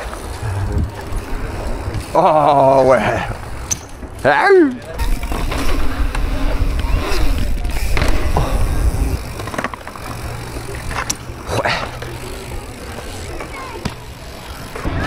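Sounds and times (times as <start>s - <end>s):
bike rolling on concrete: 0.0s - 15.0s
wind on microphone: 0.4s - 1.6s.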